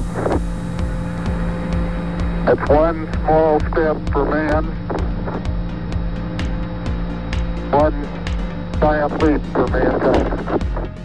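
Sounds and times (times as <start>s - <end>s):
music with low pulsing beat: 0.0s - 11.0s
radio hiss and hum: 0.0s - 11.0s.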